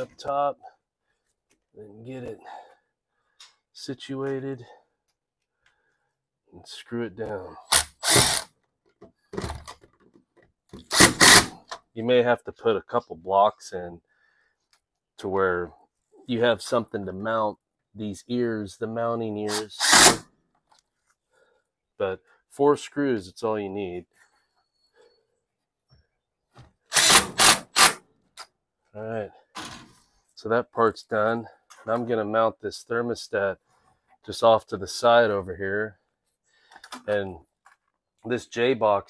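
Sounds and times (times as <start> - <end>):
cordless drill driving screw: 7.6 - 8.5, 10.8 - 11.6, 19.5 - 20.2, 26.9 - 28.0
cordless power driver running: 7.7 - 8.4.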